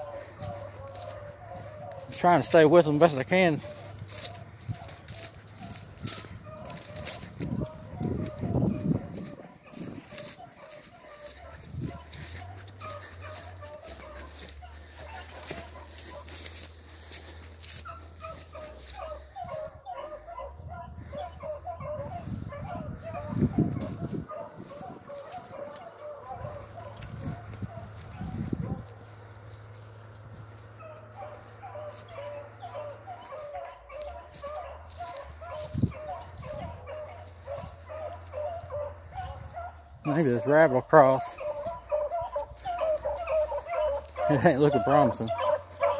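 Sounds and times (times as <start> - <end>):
dry brush crackling: 0.0 - 20.5, 21.1 - 45.9
distant dogs baying: 0.0 - 45.9.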